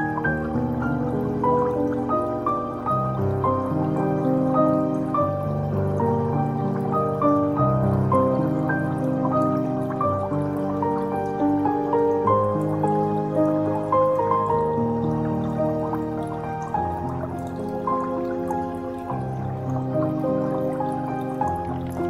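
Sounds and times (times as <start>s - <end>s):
calm instrumental music: 0.0s - 22.0s
water dripping: 0.0s - 22.0s.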